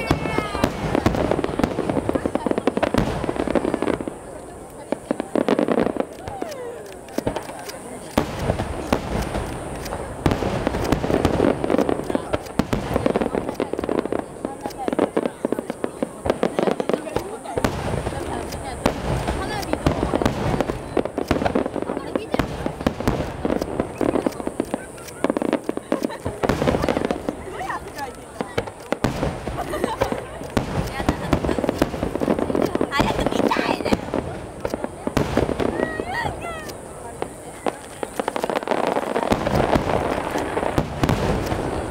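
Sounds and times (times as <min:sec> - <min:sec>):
firework shells bursting: 0:00.0 - 0:41.9.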